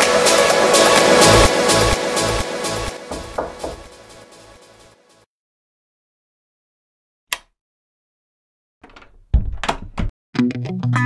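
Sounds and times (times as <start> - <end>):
door shutting with heavy thud: 3.0 - 3.9, 8.8 - 10.1
sharp door knock: 3.1 - 3.9.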